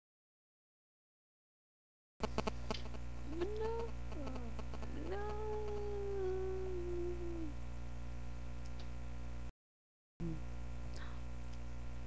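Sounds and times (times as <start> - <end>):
steady low hum: 2.2 - 9.5, 10.2 - 12.0.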